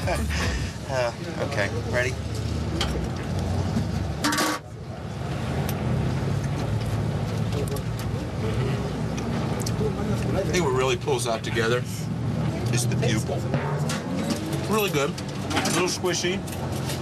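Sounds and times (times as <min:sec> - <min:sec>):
street traffic rumble: 0:00.0 - 0:17.0.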